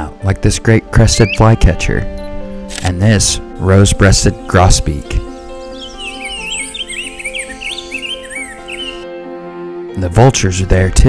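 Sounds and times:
background music: 0.0 - 11.0
bird singing warbled phrase: 0.6 - 2.2, 3.0 - 9.1.

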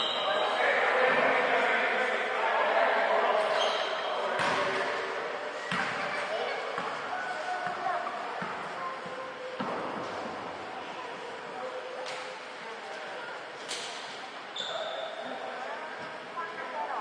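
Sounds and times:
players' voices: 0.0 - 17.0
basketball bouncing on court: 5.6 - 6.1, 6.8 - 7.0, 7.6 - 10.1.

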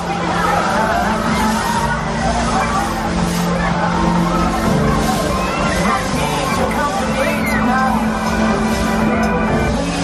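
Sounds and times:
crowd voices: 0.0 - 10.0
loud pop music: 0.0 - 10.0.

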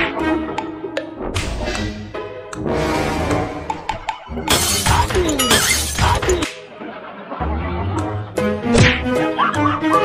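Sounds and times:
background music: 0.0 - 10.0
glass shattering: 4.5 - 6.4.

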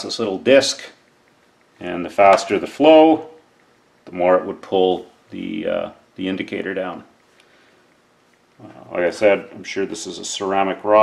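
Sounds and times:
man speaking: 0.0 - 1.0, 1.8 - 3.4, 4.1 - 7.2, 8.6 - 11.0.

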